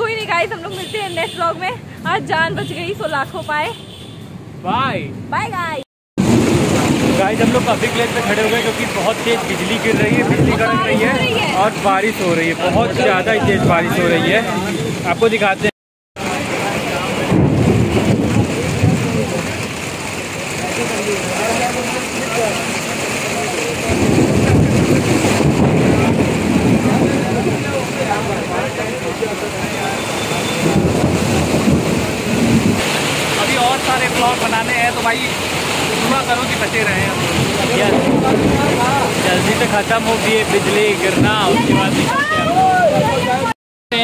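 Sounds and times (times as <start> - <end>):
heavy rain pouring: 0.0 - 3.6, 4.5 - 44.0
thunder rumbling: 6.2 - 15.1, 16.2 - 43.5.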